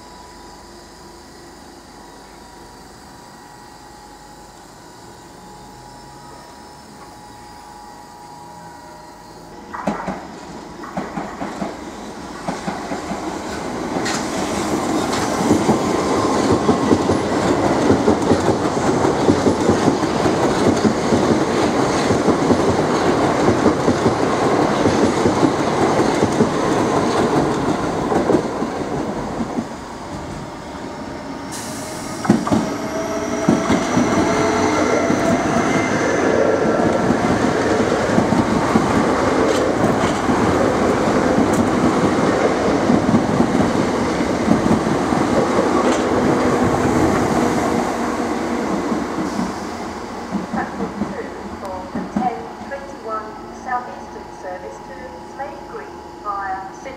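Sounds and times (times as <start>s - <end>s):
electric train whine: 0.0s - 56.9s
train wheels clattering over rail joints: 9.7s - 11.8s.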